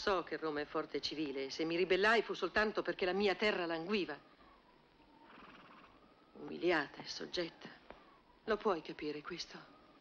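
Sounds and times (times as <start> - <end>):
woman speaking: 0.0 - 4.3, 6.4 - 10.0
faint soft background sound: 0.0 - 10.0.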